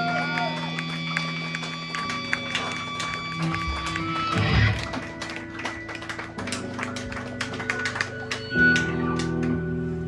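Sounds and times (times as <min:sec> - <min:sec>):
live metal band playing: 0:00.0 - 0:05.6.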